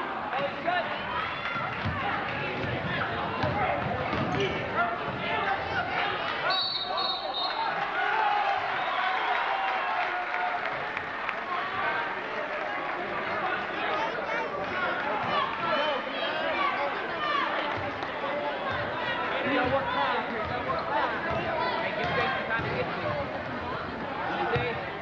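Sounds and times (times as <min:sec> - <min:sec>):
crowd chatter and shouting: 0:00.0 - 0:25.0
referee whistle blasts: 0:06.5 - 0:07.7.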